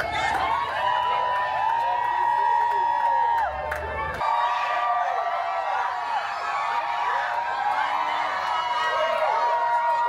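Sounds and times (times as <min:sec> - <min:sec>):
crowd screaming and shouting: 0:00.0 - 0:10.0.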